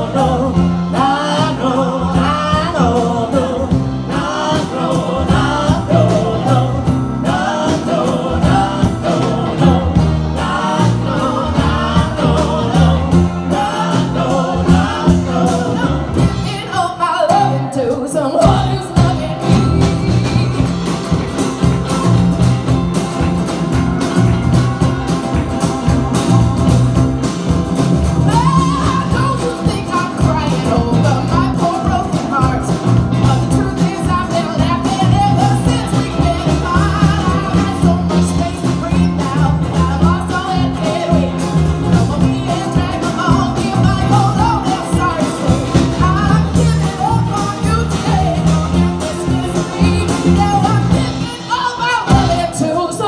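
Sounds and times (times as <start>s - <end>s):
low bass notes: 0.0s - 16.8s, 18.4s - 51.4s
woman singing lead: 0.0s - 22.5s, 28.1s - 53.0s
drum kit steady beat: 0.0s - 53.0s
electric and acoustic guitars: 0.0s - 53.0s.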